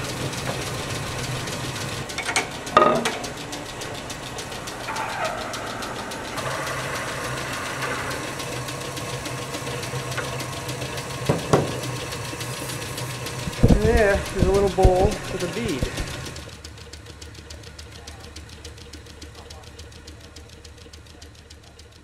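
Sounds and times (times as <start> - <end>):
tool rubbing on spinning metal: 0.0 - 17.0
lathe humming: 0.0 - 21.9.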